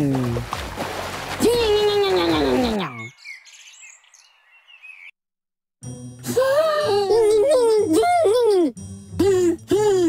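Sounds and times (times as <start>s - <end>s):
small birds chirping: 1.8s - 5.2s.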